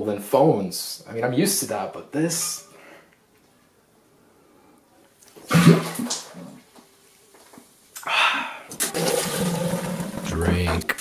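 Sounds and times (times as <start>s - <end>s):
man gulping loudly: 5.5s - 6.6s.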